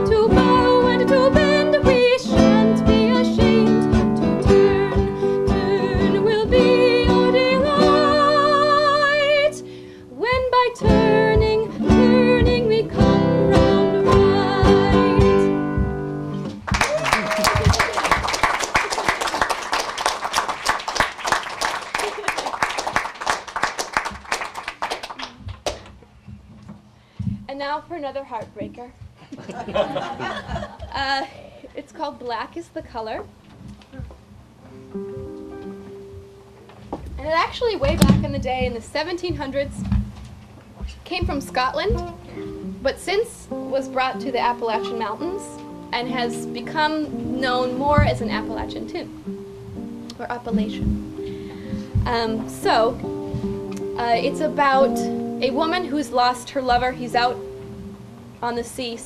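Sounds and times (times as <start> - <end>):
woman singing folk song: 0.0 - 16.0, 37.2 - 40.0, 40.9 - 49.1, 50.1 - 53.2, 53.9 - 57.4, 58.4 - 59.0
classical guitar: 0.0 - 16.7, 33.2 - 59.0
audience applause: 16.6 - 25.8.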